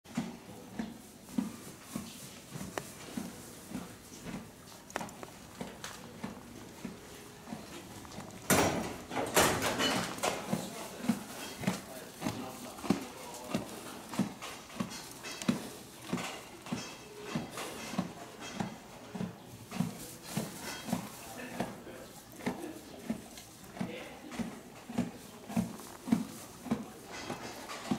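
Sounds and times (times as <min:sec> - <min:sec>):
horse chewing hay: 0:00.1 - 0:27.9.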